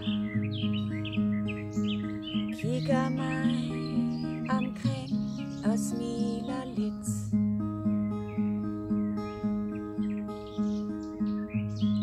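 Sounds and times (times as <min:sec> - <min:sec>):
acoustic guitar picking: 0:00.0 - 0:12.0
small birds chirping: 0:00.0 - 0:12.0.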